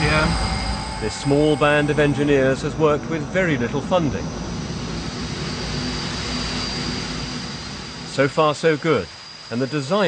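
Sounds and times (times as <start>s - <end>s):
rush of high-speed air: 0.0s - 10.0s
thin high whine: 0.0s - 10.0s.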